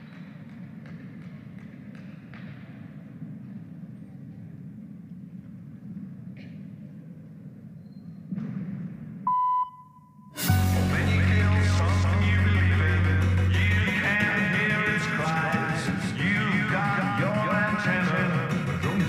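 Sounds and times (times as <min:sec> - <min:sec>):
sports hall murmur: 0:00.0 - 0:09.1
short electronic beep: 0:09.3 - 0:10.8.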